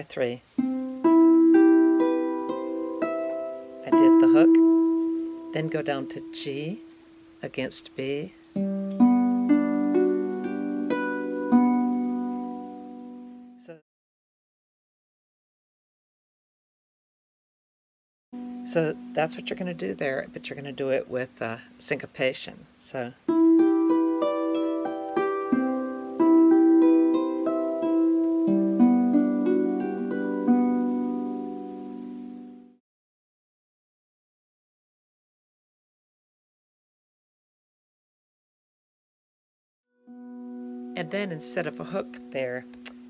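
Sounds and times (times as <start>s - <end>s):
harp notes plucked: 0.6s - 13.8s, 18.4s - 22.1s, 23.3s - 32.8s, 40.1s - 43.0s.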